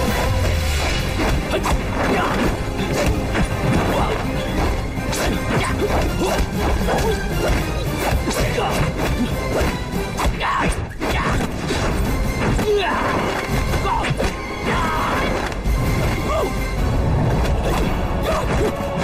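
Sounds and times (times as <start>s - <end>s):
action music: 0.0s - 19.0s.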